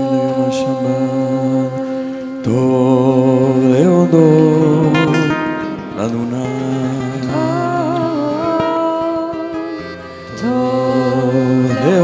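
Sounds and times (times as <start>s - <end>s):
wordless chant-like singing: 0.0s - 12.0s.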